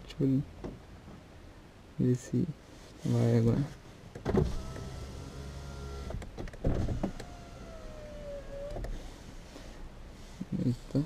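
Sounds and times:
electric window motor whining: 0:04.3 - 0:09.1.

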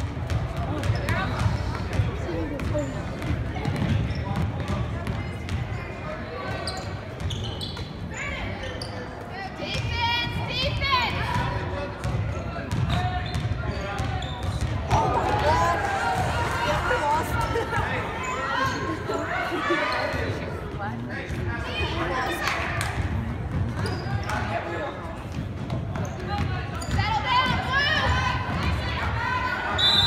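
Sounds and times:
spectators' voices: 0:00.0 - 0:30.0.

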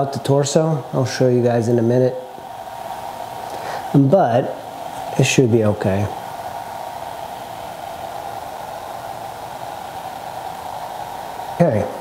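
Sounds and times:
fan-like whooshing noise: 0:00.0 - 0:12.0.

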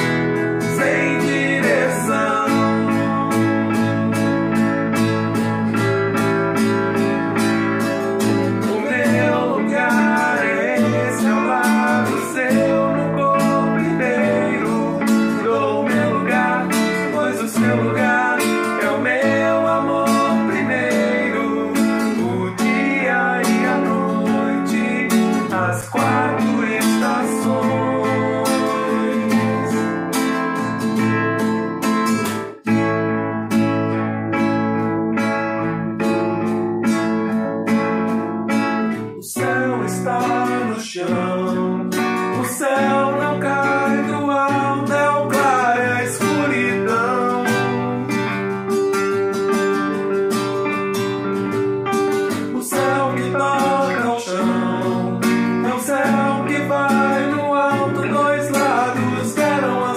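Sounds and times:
man singing: 0:00.0 - 0:04.4, 0:08.2 - 0:30.8, 0:39.0 - 0:48.6, 0:52.3 - 0:59.9
acoustic guitar strumming: 0:00.0 - 0:59.9.

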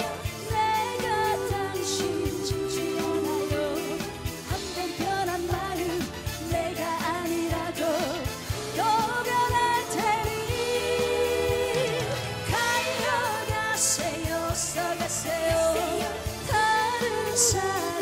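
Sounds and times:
dance beat backing track: 0:00.0 - 0:18.0
woman singing: 0:00.0 - 0:18.0.

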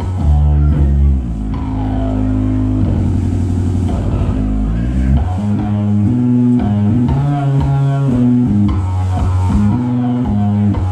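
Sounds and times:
bass guitar low notes: 0:00.0 - 0:10.9
distorted electric guitar: 0:00.0 - 0:10.9.

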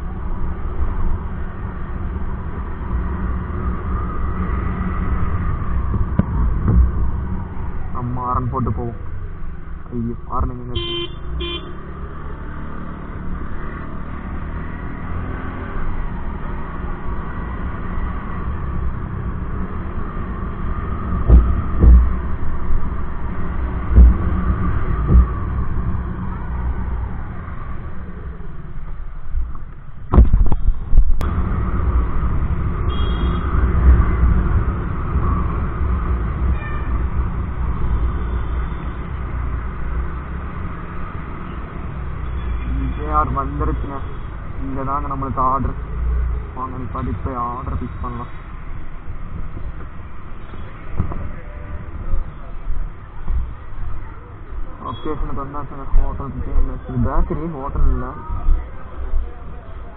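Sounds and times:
vehicle horn toots: 0:10.7 - 0:11.8, 0:32.9 - 0:33.5, 0:36.5 - 0:37.0, 0:54.9 - 0:55.2.

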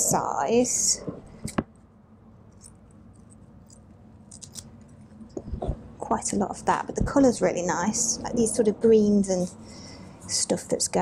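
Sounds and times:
scissors snipping lace: 0:02.6 - 0:04.9.

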